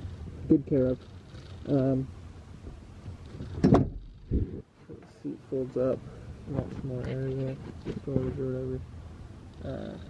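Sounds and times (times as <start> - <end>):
low rumbling handling noise: 0.0 - 9.8
seat clunk: 2.6 - 4.4.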